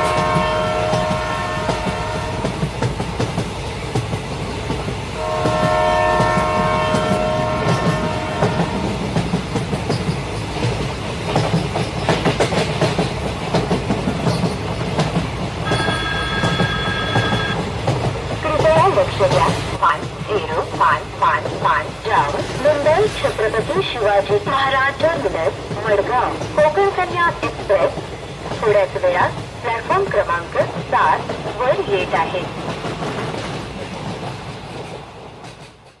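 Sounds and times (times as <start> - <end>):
train horn chord: 0.0 - 2.5, 5.2 - 9.0
train wheels clickety-clack: 0.0 - 36.0.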